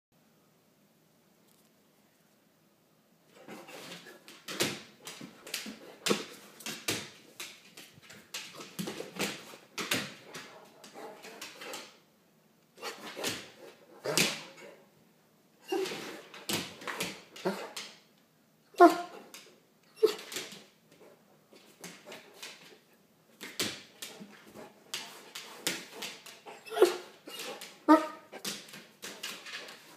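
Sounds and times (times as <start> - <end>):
dog barking and whining: 15.6 - 16.3, 17.3 - 17.8, 18.7 - 19.3, 19.9 - 20.4, 26.4 - 28.6.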